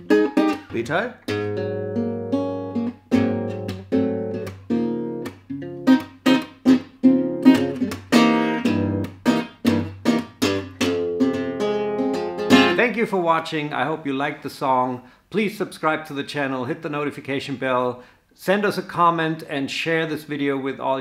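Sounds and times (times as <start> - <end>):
acoustic guitar strumming jazz chords: 0.0 - 14.8.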